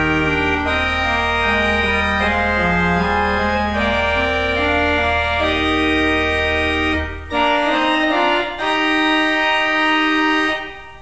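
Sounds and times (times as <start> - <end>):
church organ playing chords: 0.0 - 11.0.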